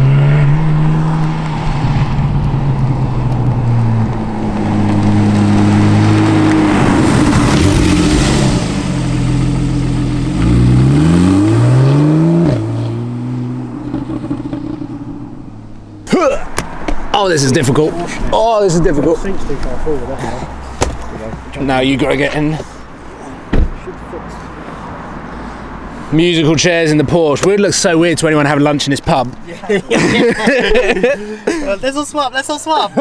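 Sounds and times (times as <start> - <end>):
rush of passing noise: 0.0 - 23.1.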